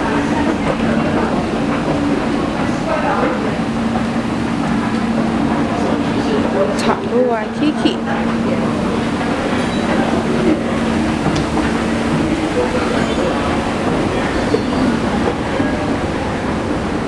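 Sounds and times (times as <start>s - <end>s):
escalator mechanical rumble: 0.0s - 17.0s
murmur of voices: 0.0s - 17.0s.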